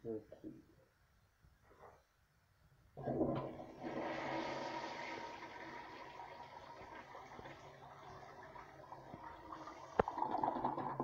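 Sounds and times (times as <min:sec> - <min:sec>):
toilet flushing: 0:03.0 - 0:11.0.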